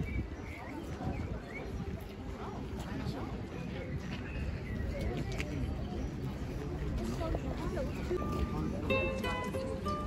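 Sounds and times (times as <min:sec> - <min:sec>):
small birds chirping: 0:00.0 - 0:02.7
faint background voices: 0:00.0 - 0:10.0.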